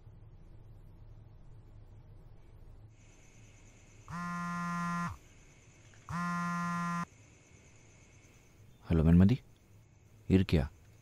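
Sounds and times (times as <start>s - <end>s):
mobile phone buzzing: 4.1s - 5.2s, 6.1s - 7.1s.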